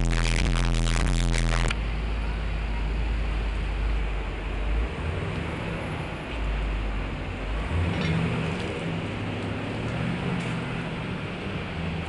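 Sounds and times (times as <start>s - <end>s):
low engine rumble: 0.0s - 12.0s
passing vehicles: 1.7s - 12.0s.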